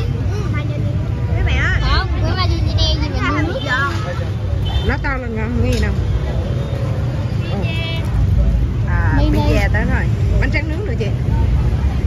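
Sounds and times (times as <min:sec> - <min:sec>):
low rumble of crowd: 0:00.0 - 0:12.0.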